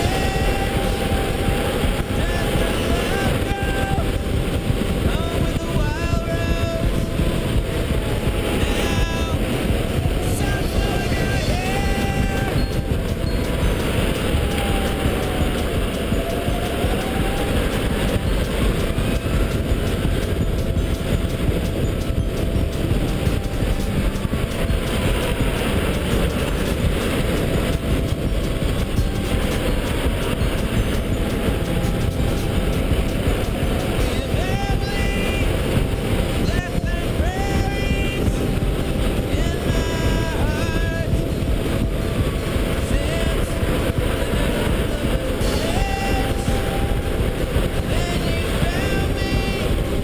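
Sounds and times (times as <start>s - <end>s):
electric motor whine: 0.0s - 50.0s
wind rushing on microphone: 0.0s - 50.0s.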